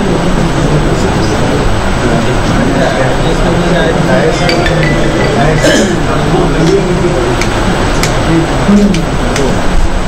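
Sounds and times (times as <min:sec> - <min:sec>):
indistinct voices: 0:00.0 - 0:09.2.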